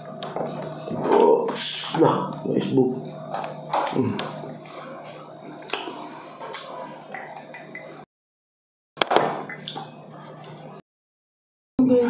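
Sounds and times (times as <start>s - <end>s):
close eating and drinking sounds: 0.1s - 8.0s.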